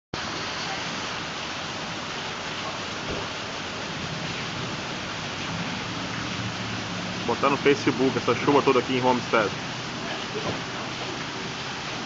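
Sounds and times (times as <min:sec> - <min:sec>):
heavy rain falling: 0:00.2 - 0:12.0.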